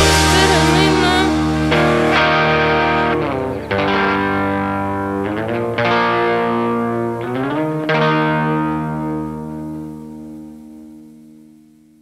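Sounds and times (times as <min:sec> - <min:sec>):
electric guitar chords with slides: 0:00.0 - 0:12.0.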